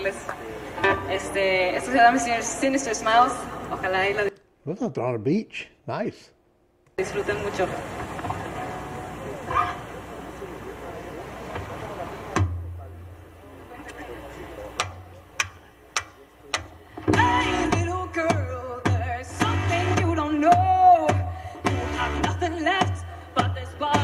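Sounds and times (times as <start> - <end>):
person talking: 4.6 - 6.3
guitar: 7.0 - 24.0
drum hits: 12.3 - 13.1
person singing: 17.0 - 24.0.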